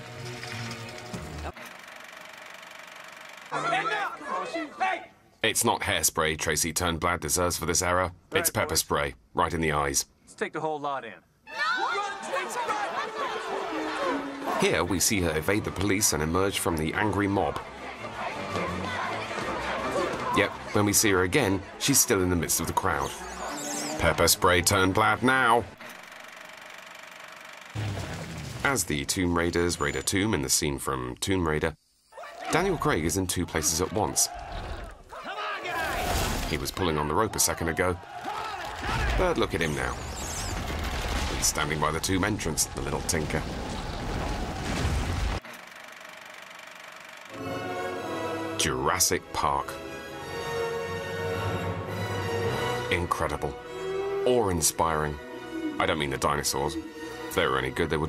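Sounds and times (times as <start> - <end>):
voices: 3.5 - 5.6, 11.5 - 25.7, 28.7 - 40.0
film score low sustained notes: 47.3 - 58.0.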